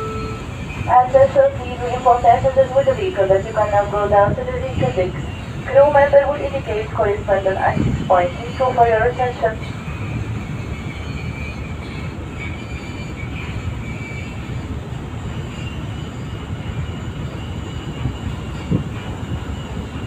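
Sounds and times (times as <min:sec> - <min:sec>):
ship engine drone: 0:00.0 - 0:20.0
water rushing along hull: 0:00.0 - 0:20.0.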